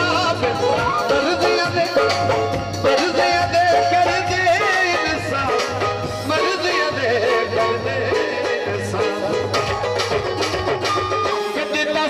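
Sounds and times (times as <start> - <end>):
man singing into a microphone: 0.0 - 9.9, 11.2 - 12.0
keyboard accompaniment: 0.0 - 12.0
hand drum beat: 8.7 - 11.4.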